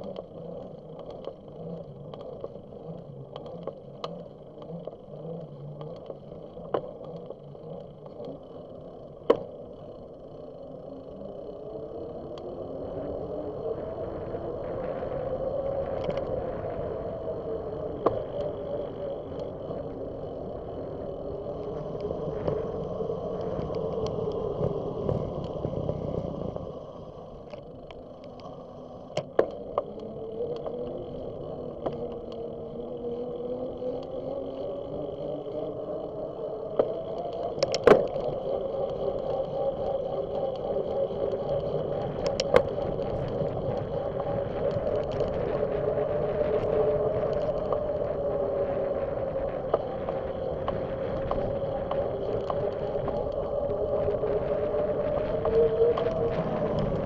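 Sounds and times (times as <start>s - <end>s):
bicycle tyres rolling on pavement: 0.0s - 57.0s
wind on microphone: 10.8s - 57.0s.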